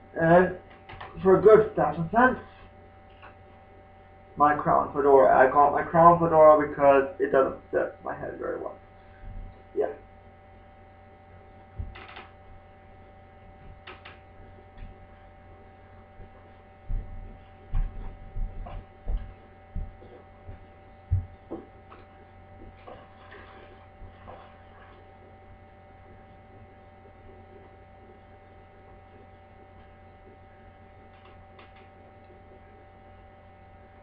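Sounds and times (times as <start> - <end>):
electrical hum: 0.0 - 34.0.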